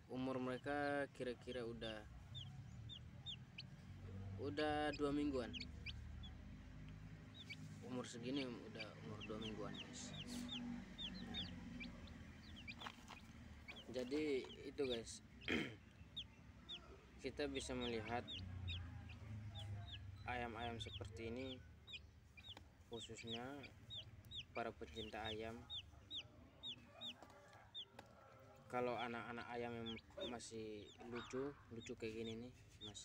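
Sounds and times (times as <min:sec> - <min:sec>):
chicks peeping: 0:00.1 - 0:33.0.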